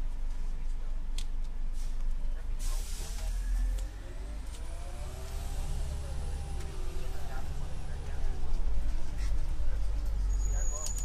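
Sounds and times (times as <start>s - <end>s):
bus engine rumble: 0.0s - 11.0s.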